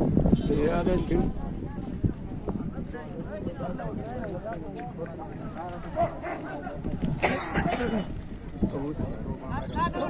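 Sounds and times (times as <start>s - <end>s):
crowd of men talking: 0.2s - 10.0s.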